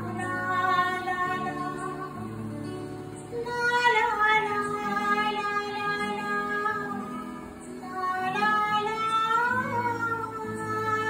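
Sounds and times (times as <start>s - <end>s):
woman singing long notes: 3.3s - 11.0s.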